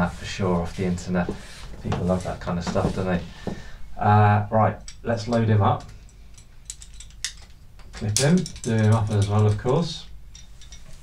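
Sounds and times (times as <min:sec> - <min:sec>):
metal climbing gear clicking: 0:04.8 - 0:11.0.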